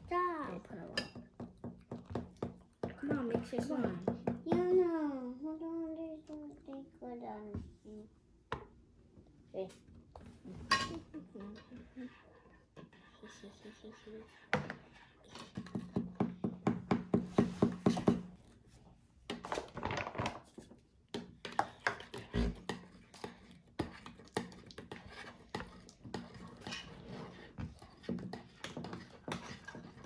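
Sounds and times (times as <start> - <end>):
spoon clicking and scraping bowl: 21.2 - 30.0.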